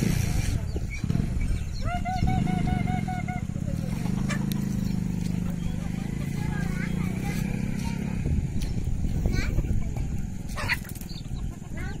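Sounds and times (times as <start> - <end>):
steady low rumble: 0.0 - 12.0
chickens squawking: 0.2 - 12.0.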